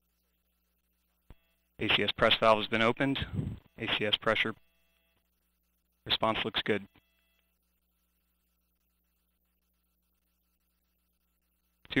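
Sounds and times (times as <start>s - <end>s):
faint electrical hum and hiss: 0.0s - 12.0s.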